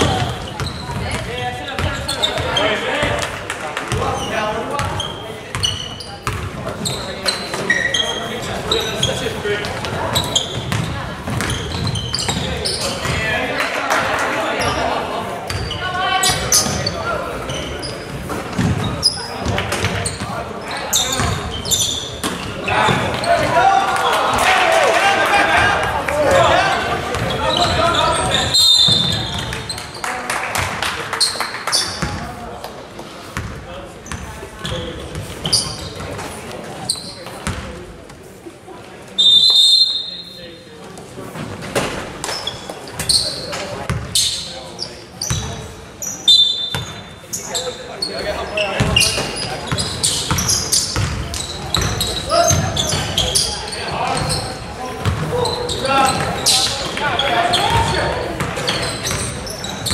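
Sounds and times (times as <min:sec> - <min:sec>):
basketball bouncing on wooden floor: 0:10.6 - 0:13.2, 0:18.5 - 0:20.0, 0:50.3 - 0:53.1.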